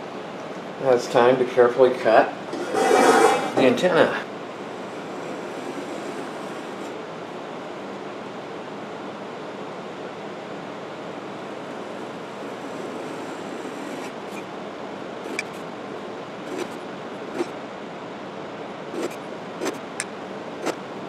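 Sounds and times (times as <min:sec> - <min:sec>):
knife scoring paper along ruler: 0:05.0 - 0:06.9, 0:12.5 - 0:14.4, 0:16.5 - 0:16.8, 0:19.0 - 0:19.9.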